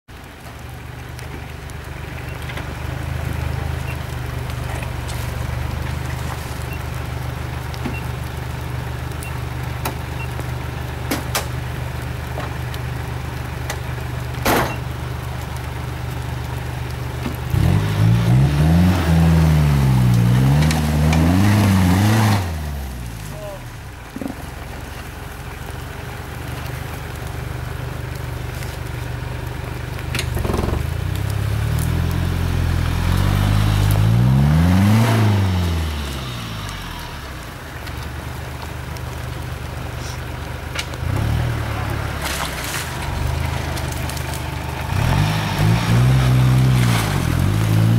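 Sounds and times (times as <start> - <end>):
engine idling and revving: 0.1 - 47.9.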